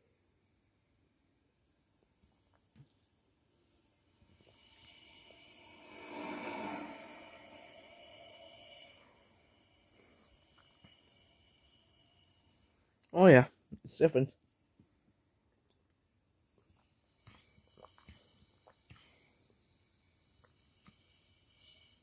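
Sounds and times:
soda fizzing: 0:04.3 - 0:12.7.

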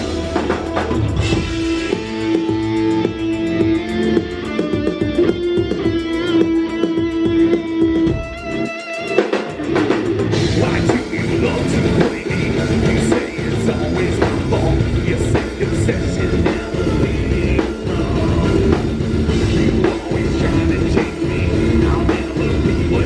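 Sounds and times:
electric guitar sustained notes: 0:00.0 - 0:23.0
muffled live rock band: 0:00.0 - 0:23.0.

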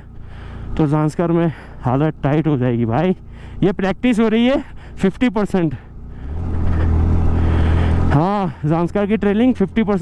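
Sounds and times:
motorcycle engine labouring uphill: 0:00.0 - 0:10.0.

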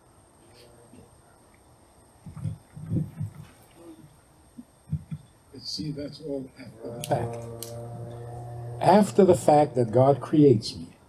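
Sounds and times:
person murmuring wordless sounds: 0:06.5 - 0:10.4.

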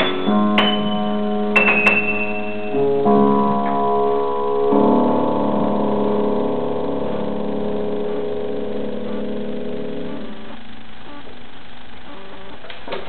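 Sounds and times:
piano chord ringing: 0:00.0 - 0:10.6.

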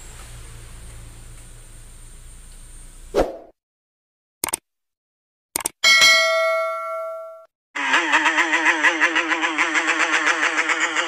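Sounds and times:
bell ding: 0:05.8 - 0:07.5.

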